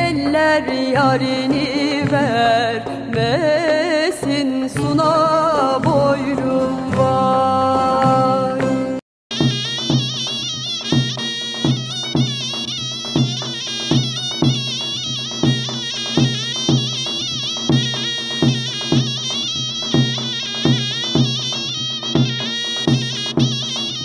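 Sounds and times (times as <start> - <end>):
drum beating: 0.0 - 24.0
reed wind instrument melody: 8.7 - 24.0.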